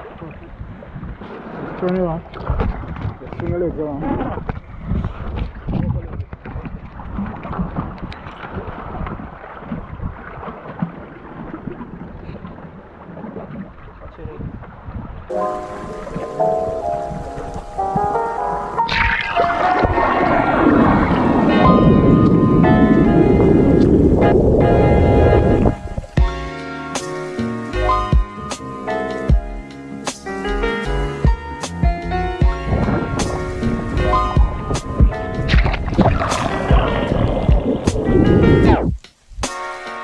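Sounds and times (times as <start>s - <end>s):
water noise: 0.0s - 40.0s
wind gusting: 14.8s - 26.3s, 32.4s - 39.5s
background music: 15.3s - 20.0s, 20.6s - 40.0s.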